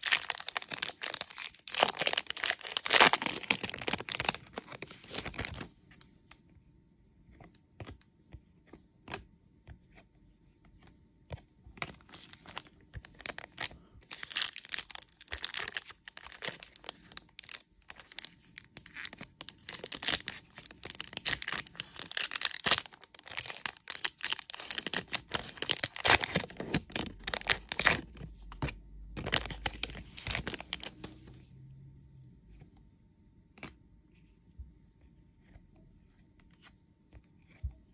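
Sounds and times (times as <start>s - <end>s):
foil wrapper tearing and crinkling: 0.0s - 5.7s, 12.2s - 28.1s, 29.2s - 31.0s.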